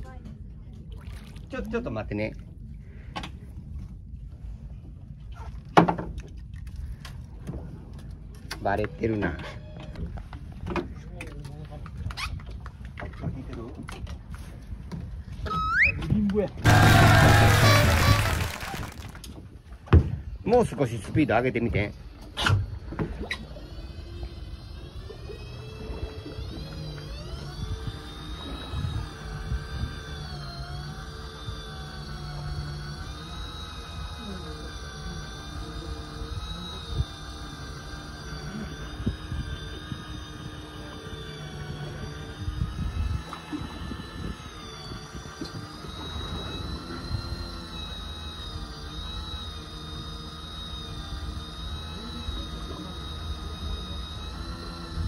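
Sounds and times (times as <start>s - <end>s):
electric fishing reel motor whine: 15.3s - 19.3s, 20.6s - 55.0s
low rumble: 16.6s - 19.3s.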